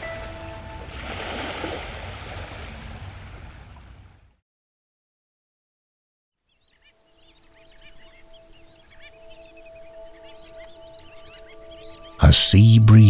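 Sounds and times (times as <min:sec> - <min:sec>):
held music chord: 0:00.0 - 0:01.0, 0:07.0 - 0:13.0
birds chirping: 0:06.4 - 0:13.0.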